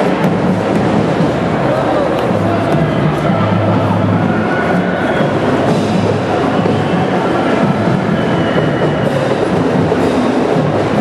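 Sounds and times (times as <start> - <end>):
marching band playing: 0.0 - 11.0.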